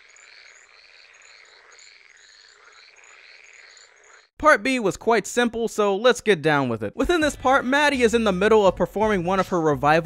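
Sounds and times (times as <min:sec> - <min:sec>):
frogs trilling: 0:00.0 - 0:04.3.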